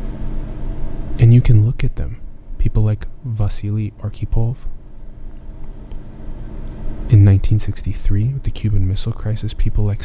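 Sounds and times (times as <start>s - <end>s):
low rumble with faint hum: 0.0s - 10.0s.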